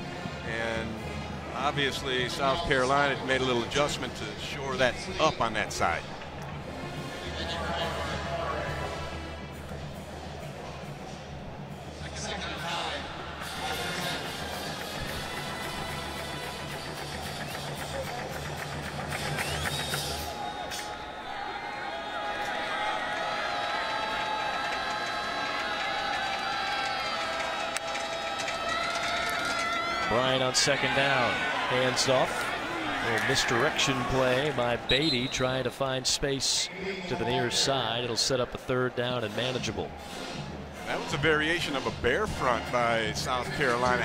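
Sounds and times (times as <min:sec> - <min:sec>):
stadium crowd noise: 0:00.0 - 0:44.0.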